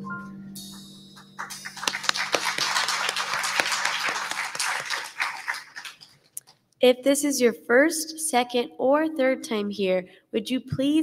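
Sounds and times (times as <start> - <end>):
musical piece: 0.0 - 5.6
congregation applauding: 1.4 - 6.3.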